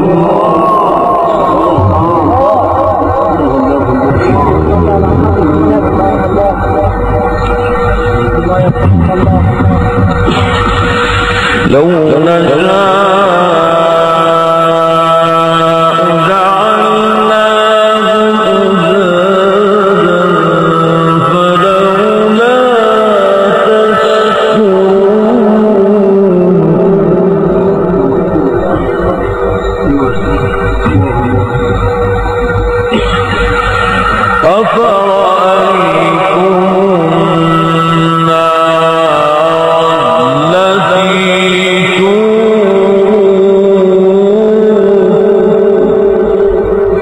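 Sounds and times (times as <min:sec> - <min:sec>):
man reciting in melismatic tone: 0:00.0 - 0:47.0
low rumble: 0:00.5 - 0:12.2, 0:27.9 - 0:37.2.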